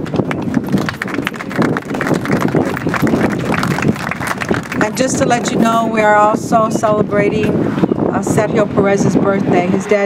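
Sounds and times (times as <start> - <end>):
crowd applauding: 0.0 - 5.2.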